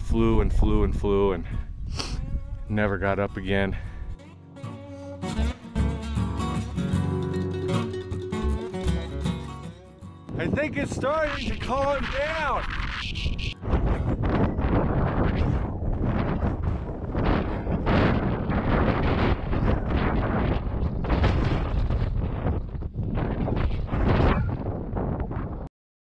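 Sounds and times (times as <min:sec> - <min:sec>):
wind buffeting microphone: 0:00.0 - 0:04.2, 0:10.3 - 0:25.7.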